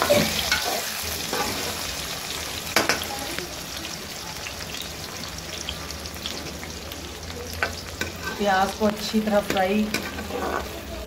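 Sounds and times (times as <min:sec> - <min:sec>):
ladle stirring in pan: 0:00.0 - 0:03.1, 0:07.5 - 0:11.0
onions sizzling in hot oil: 0:00.0 - 0:11.0.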